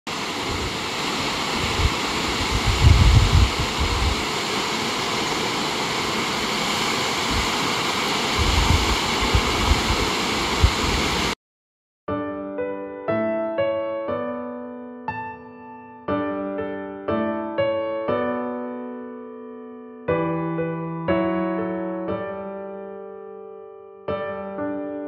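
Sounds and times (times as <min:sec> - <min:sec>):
waterfall rushing: 0:00.1 - 0:11.4
wind buffeting microphone: 0:00.4 - 0:04.4, 0:07.2 - 0:07.7, 0:08.3 - 0:11.4.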